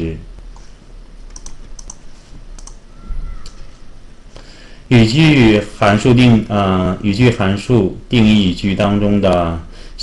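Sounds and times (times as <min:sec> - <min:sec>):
computer mouse clicks: 0:01.3 - 0:02.8, 0:03.4 - 0:03.7.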